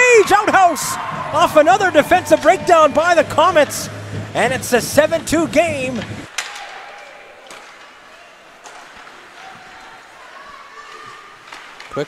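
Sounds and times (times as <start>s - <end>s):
distant echoing voices: 0.0s - 11.8s
hockey sticks and puck knocking: 7.4s - 10.0s, 10.9s - 12.0s.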